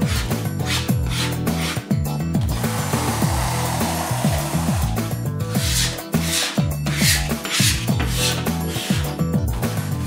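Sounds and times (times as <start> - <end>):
background music with bassline: 0.0 - 10.0.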